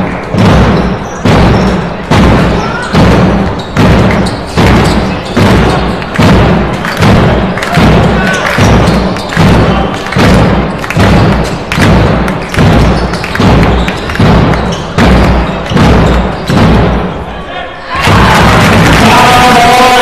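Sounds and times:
big drum beating with echo: 0:00.0 - 0:17.3, 0:17.9 - 0:20.0.

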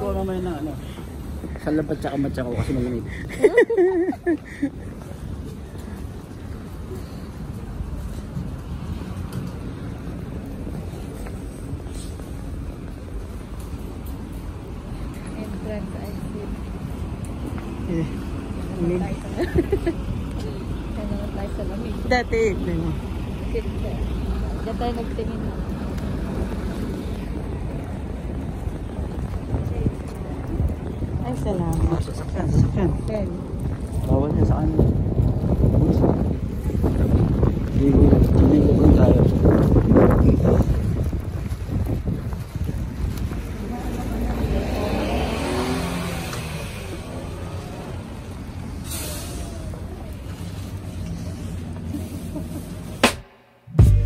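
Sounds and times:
bus driving past: 0:00.0 - 0:54.0
traffic: 0:00.0 - 0:54.0
wind rumble on microphone: 0:23.1 - 0:48.8
faint voices: 0:46.0 - 0:53.0.

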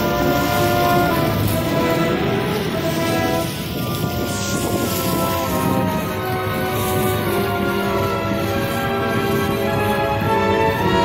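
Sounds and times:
music with held tones: 0:00.0 - 0:11.0
rain: 0:00.0 - 0:11.0
thunder: 0:00.0 - 0:11.0.

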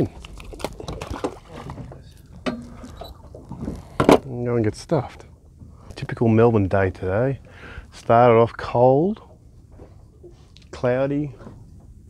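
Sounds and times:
water lapping at hull: 0:00.0 - 0:05.9, 0:09.0 - 0:12.0.

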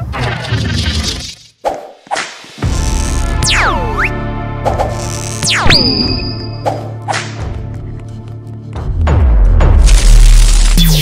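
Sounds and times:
background music: 0:02.1 - 0:11.0.

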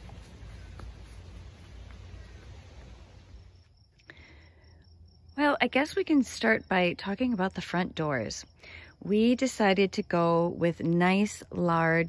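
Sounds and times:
insect trill: 0:00.0 - 0:12.0
quiet outdoor ambience: 0:00.0 - 0:12.0.

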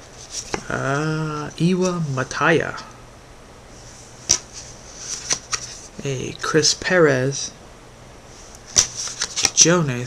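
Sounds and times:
soft card rustle: 0:00.0 - 0:02.4, 0:03.8 - 0:05.9, 0:08.4 - 0:09.8
trading cards snapping: 0:04.3 - 0:04.5, 0:05.1 - 0:05.8, 0:08.7 - 0:09.7.

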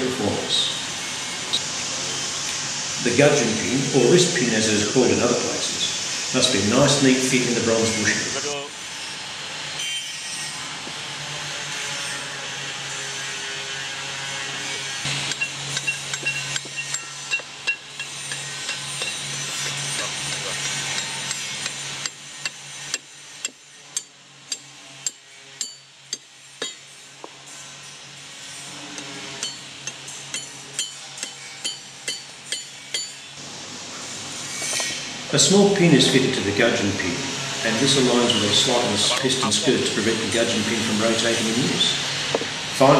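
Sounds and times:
hammer striking a copper punch: 0:21.0 - 0:26.8, 0:30.3 - 0:33.2.

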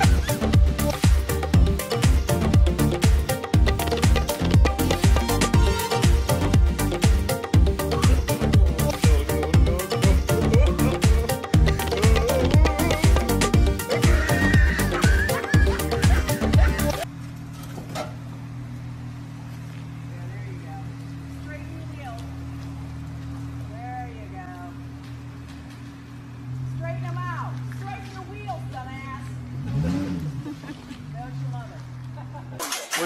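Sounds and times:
car engine running: 0:00.0 - 0:33.0.

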